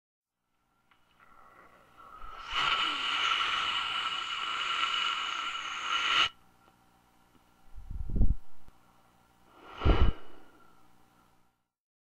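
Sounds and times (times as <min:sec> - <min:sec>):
rushing hiss: 0:02.0 - 0:06.3.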